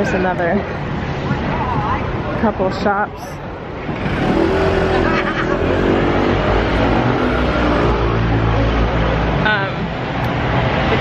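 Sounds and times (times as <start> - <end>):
low traffic rumble: 0.0 - 11.0
vehicle engine passing close: 3.8 - 9.4.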